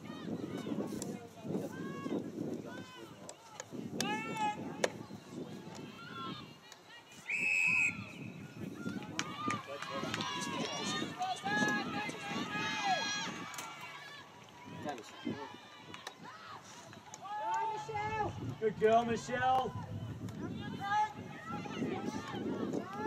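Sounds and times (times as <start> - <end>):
whistle blast: 7.3 - 8.4
people shouting: 9.2 - 14.3.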